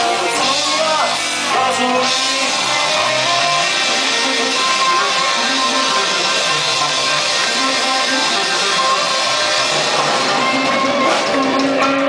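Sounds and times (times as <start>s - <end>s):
electric guitars: 0.0s - 12.0s
live rock band playing: 0.0s - 12.0s.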